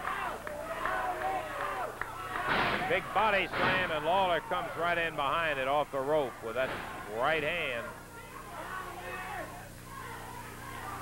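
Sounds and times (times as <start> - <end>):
arena crowd voices: 0.0 - 11.0
commentary: 1.9 - 11.0.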